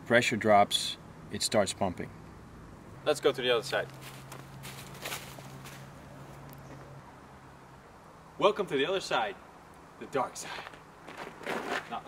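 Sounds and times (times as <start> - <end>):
steady low hum: 0.0 - 12.0
footsteps on dry leaves: 3.9 - 6.0.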